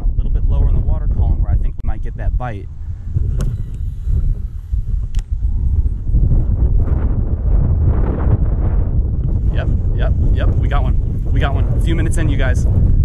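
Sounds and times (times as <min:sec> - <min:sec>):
wind buffeting microphone: 0:00.0 - 0:13.0
sharp clicks: 0:05.0 - 0:05.4.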